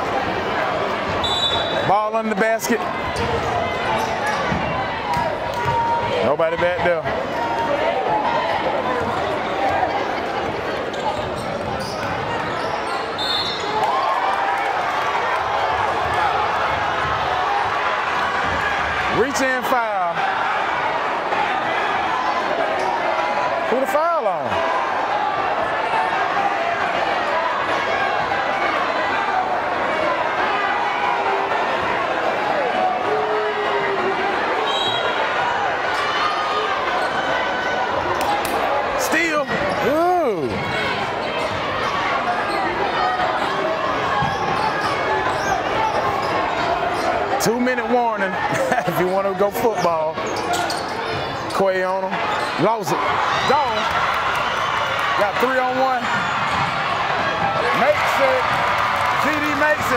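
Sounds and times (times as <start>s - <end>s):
crowd chatter and calls: 0.0s - 59.9s
sneakers squeaking: 0.9s - 1.9s, 3.0s - 6.2s, 8.6s - 14.0s, 35.9s - 38.4s, 39.4s - 47.4s, 49.1s - 51.6s, 52.2s - 52.6s, 56.0s - 58.7s.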